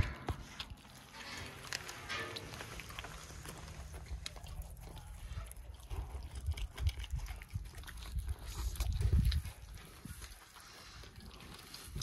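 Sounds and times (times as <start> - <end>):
wet chewing and tearing meat: 0.0 - 12.0.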